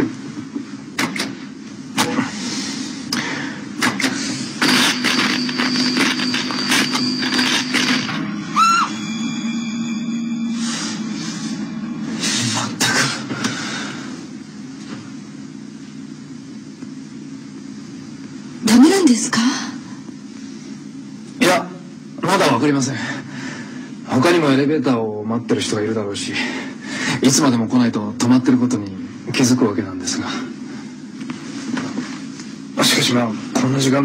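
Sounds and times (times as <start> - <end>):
low steady drone: 1.9 - 24.9
thin high tone: 5.2 - 13.2
short rising tone: 8.1 - 12.8.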